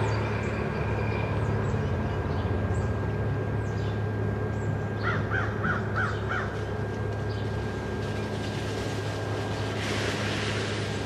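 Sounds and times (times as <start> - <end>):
steady low hum: 0.0 - 11.0
crow cawing: 5.0 - 6.6.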